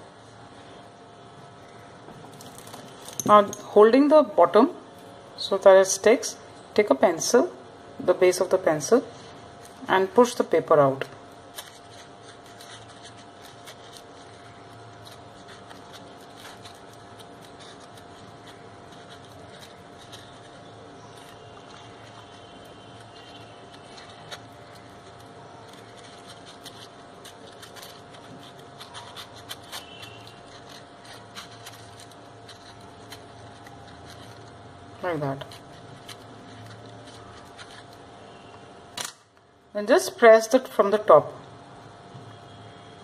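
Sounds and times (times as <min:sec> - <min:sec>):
faint steady hum: 0:00.0 - 0:43.0
crepe paper rustling: 0:11.5 - 0:38.5.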